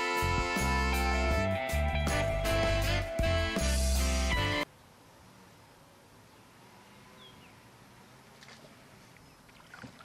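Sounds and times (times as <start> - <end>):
canoe paddling: 8.2 - 10.0.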